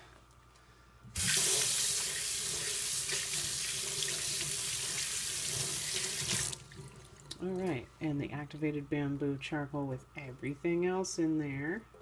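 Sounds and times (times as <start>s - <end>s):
faucet turned on: 1.2s - 6.8s
water running into steel sink: 1.2s - 7.1s.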